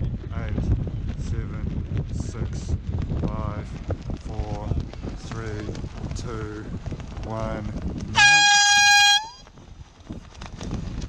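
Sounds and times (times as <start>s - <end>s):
wind noise on microphone: 0.0s - 11.0s
air horn blast: 8.2s - 9.4s.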